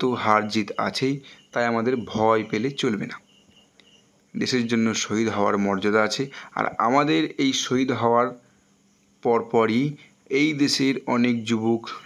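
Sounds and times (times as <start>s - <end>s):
man lecturing: 0.0s - 3.2s, 4.4s - 8.4s, 9.2s - 12.0s
faint high-pitched chirping: 0.0s - 12.0s.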